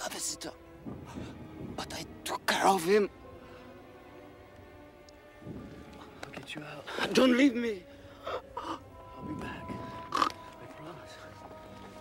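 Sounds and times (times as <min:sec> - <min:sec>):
music with steady tones: 0:00.0 - 0:12.0.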